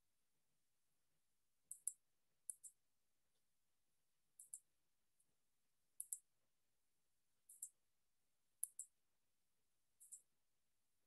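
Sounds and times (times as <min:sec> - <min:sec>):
computer mouse clicks: 0:01.7 - 0:02.8, 0:04.4 - 0:04.7, 0:06.0 - 0:06.3, 0:07.5 - 0:07.8, 0:08.6 - 0:09.0, 0:10.0 - 0:10.3.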